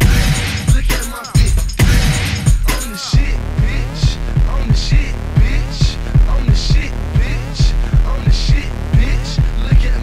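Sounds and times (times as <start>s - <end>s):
steady low bass: 0.0s - 0.8s, 1.4s - 10.0s
higher percussion hit: 0.0s - 2.9s
heavy kick drum: 0.0s - 10.0s.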